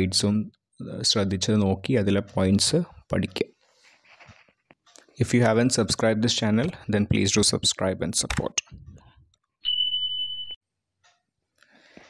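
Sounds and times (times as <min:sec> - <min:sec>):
high electronic beep: 0:09.6 - 0:10.6.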